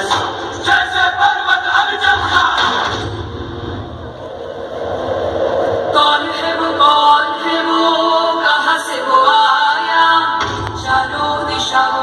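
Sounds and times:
song with long held vocals: 0:00.0 - 0:04.0, 0:04.6 - 0:12.0.

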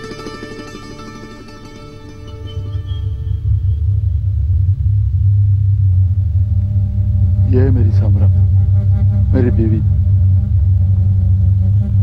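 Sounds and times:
sustained low drone: 0:00.0 - 0:12.0.

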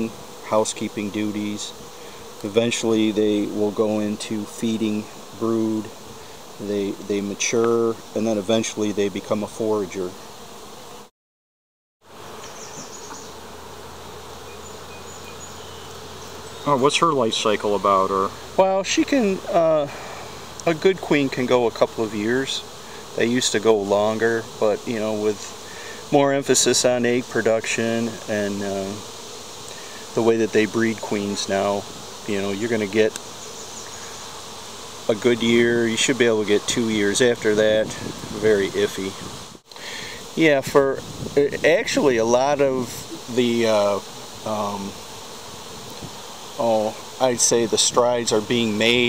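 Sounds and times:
honeybee colony buzzing: 0:00.0 - 0:11.1, 0:12.0 - 0:49.0.

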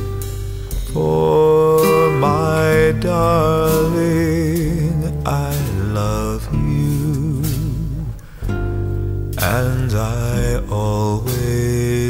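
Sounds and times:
person singing ballad: 0:00.0 - 0:12.0
soft acoustic guitar: 0:00.0 - 0:12.0.

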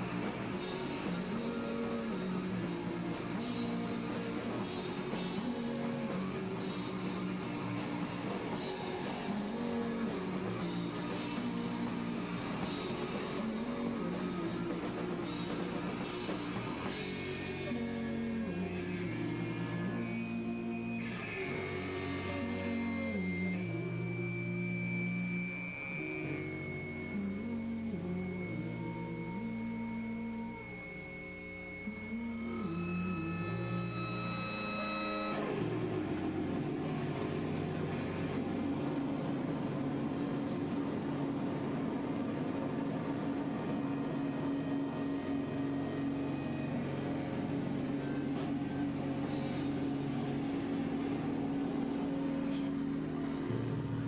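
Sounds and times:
rock band electric guitars: 0:00.0 - 0:54.0.

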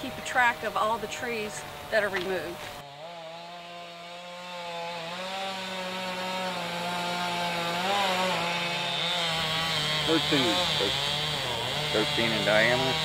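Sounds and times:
chainsaw running at high revs: 0:00.0 - 0:13.0.

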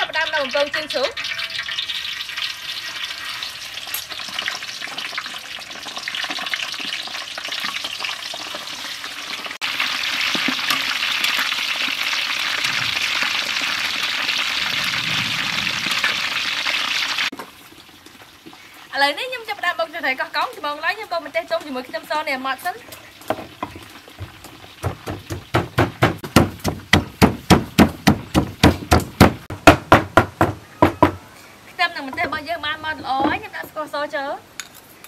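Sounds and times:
meat deep-frying in hot oil: 0:00.0 - 0:29.5.

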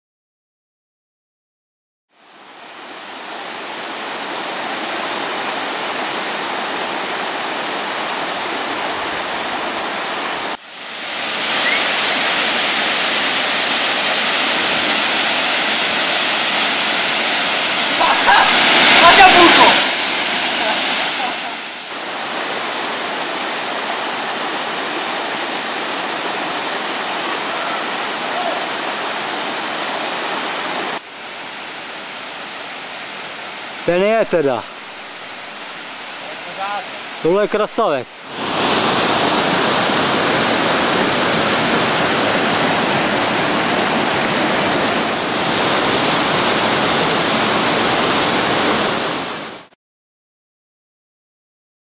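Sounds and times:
waterfall roaring: 0:02.2 - 0:49.7
person's voice: 0:18.0 - 0:19.9, 0:33.9 - 0:34.7, 0:36.2 - 0:38.1.

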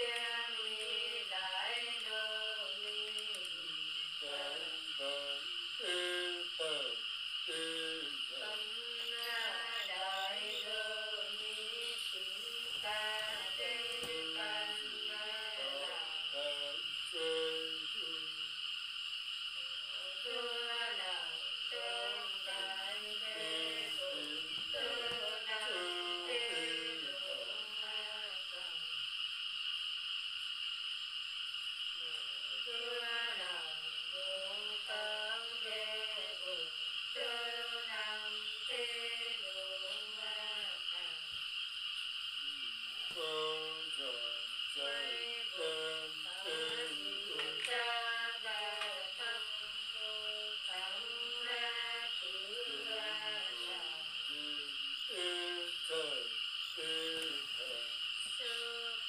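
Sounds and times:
woman singing unaccompanied: 0:00.0 - 0:18.5, 0:19.6 - 0:29.0, 0:32.0 - 0:41.3, 0:42.9 - 0:59.0
high insect chirr: 0:00.0 - 0:59.0.

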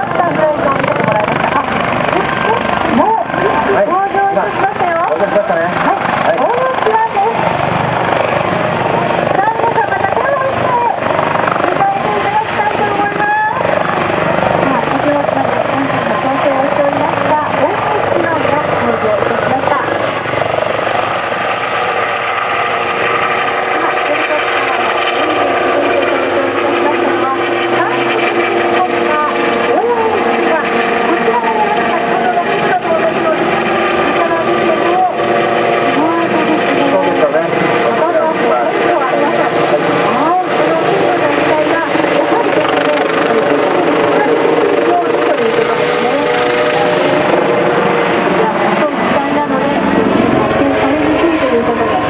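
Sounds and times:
helicopter rotor and turbine: 0:00.0 - 0:52.0
steady whine: 0:00.0 - 0:52.0.

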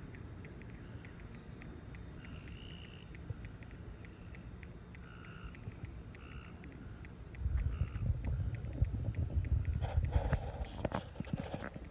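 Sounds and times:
phone microphone handling noise: 0:07.5 - 0:11.9.

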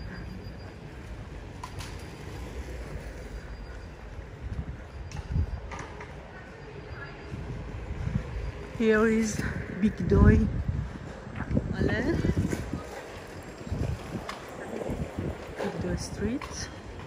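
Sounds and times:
low street rumble: 0:00.0 - 0:17.0.

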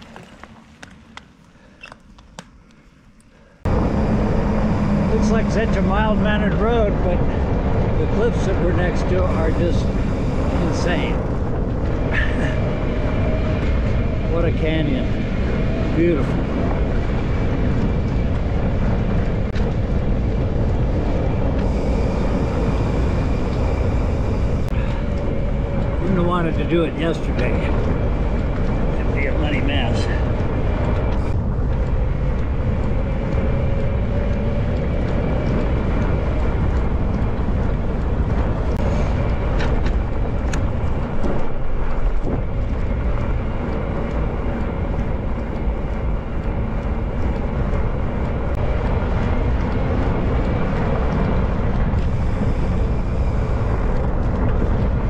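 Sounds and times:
bike tyres rumbling on dirt: 0:00.0 - 0:01.8
grit ticking and crackling: 0:00.0 - 0:55.0
rumbling wind and road noise: 0:00.0 - 0:55.0
steady low hum: 0:00.0 - 0:55.0.

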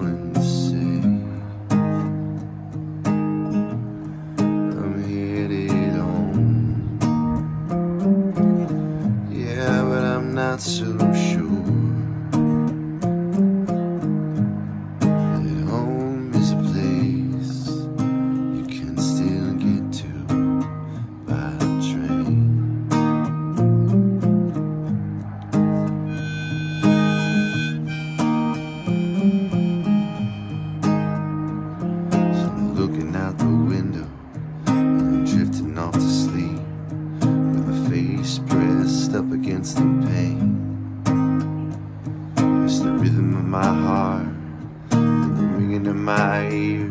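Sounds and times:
strummed acoustic guitar: 0:00.0 - 0:46.9
harmonica melody: 0:25.9 - 0:32.5.

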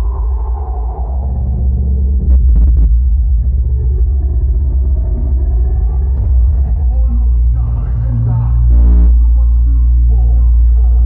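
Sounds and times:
low bass rumble: 0:00.0 - 0:11.0.

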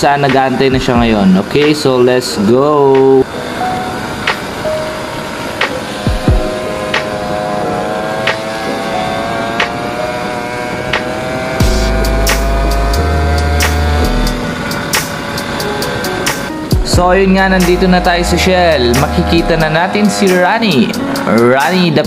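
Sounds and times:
background music with sparse beat: 0:00.0 - 0:02.0, 0:04.2 - 0:05.0, 0:05.6 - 0:22.0.

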